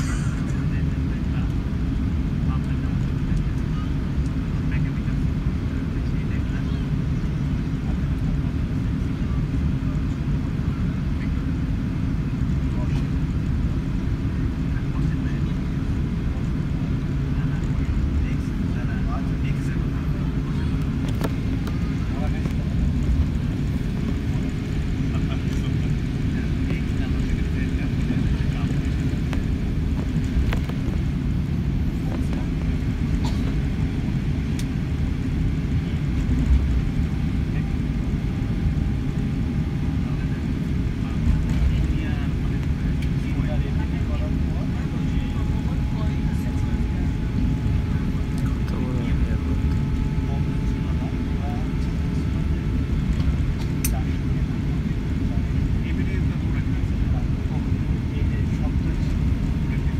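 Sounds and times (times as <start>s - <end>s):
airplane cabin rumble while taxiing: 0.0s - 59.9s.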